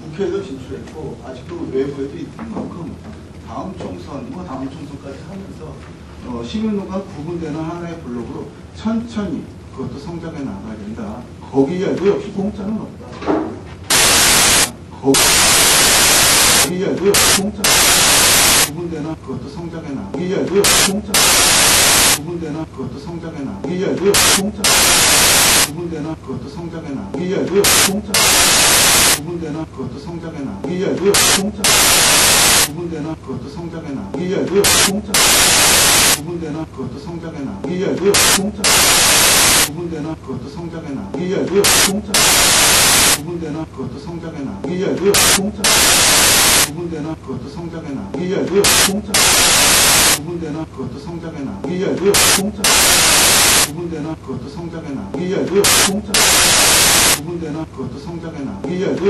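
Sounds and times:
loud harsh static hiss: 0:00.0 - 0:01.2, 0:02.0 - 0:36.7, 0:37.6 - 0:43.7, 0:44.6 - 0:47.2, 0:48.1 - 0:50.7, 0:51.6 - 0:54.2, 0:55.1 - 0:57.7
static hiss burst: 0:13.9 - 0:18.8, 0:20.4 - 0:22.2, 0:24.0 - 0:25.8, 0:27.4 - 0:29.2, 0:30.9 - 0:32.8, 0:34.4 - 0:36.2, 0:38.0 - 0:39.8, 0:41.4 - 0:43.2, 0:45.0 - 0:46.8, 0:48.6 - 0:50.2, 0:52.0 - 0:53.8, 0:55.4 - 0:57.2
chopped man's voice: 0:13.9 - 0:59.0
man speaking: 0:32.6 - 0:38.9, 0:50.2 - 0:52.8, 0:57.2 - 0:59.0.

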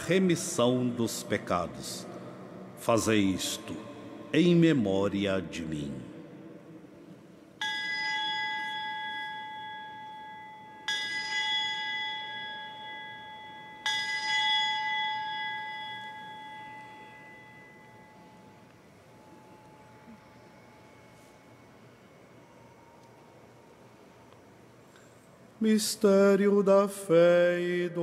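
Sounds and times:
bell ringing: 0:07.6 - 0:21.1.

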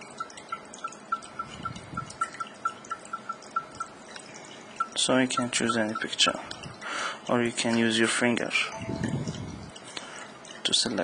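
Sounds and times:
rapid high navigation ticks: 0:00.0 - 0:07.8.

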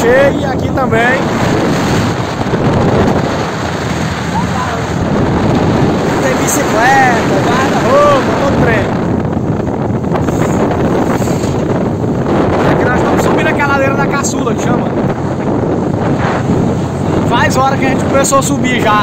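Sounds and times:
pickup truck engine and road noise: 0:00.0 - 0:13.4, 0:14.0 - 0:19.0
wind buffeting microphone: 0:00.0 - 0:19.0.

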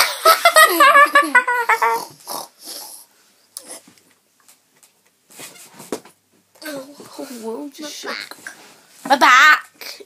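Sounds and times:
person making pig snorts: 0:01.8 - 0:03.9.

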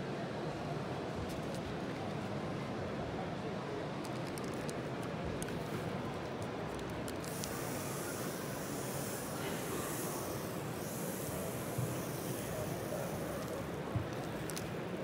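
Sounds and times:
murmur of crowd in hall: 0:00.0 - 0:15.0
high electrostatic hiss: 0:07.2 - 0:15.0.

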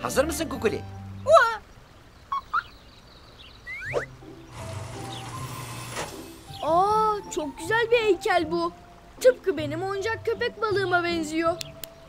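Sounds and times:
squeaky blips: 0:03.7 - 0:04.2.

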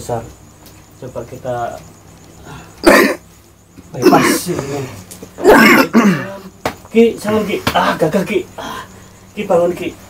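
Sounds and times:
man coughing: 0:02.8 - 0:03.2, 0:04.0 - 0:04.5, 0:05.4 - 0:06.4.

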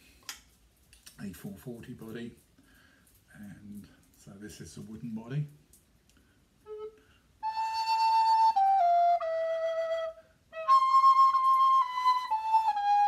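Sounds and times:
wooden recorder playing: 0:06.6 - 0:13.0.

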